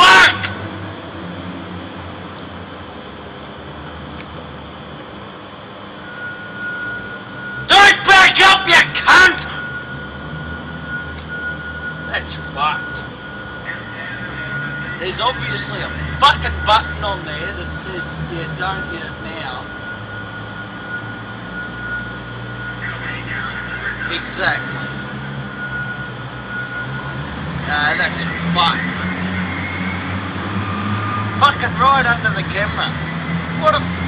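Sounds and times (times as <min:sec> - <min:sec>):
diesel engine idling: 0:00.0 - 0:34.0
thin steady high tone: 0:05.4 - 0:34.0.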